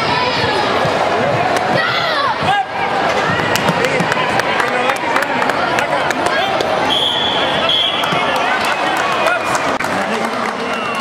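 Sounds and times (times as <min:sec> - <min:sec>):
referee's whistle: 0:06.8 - 0:08.2.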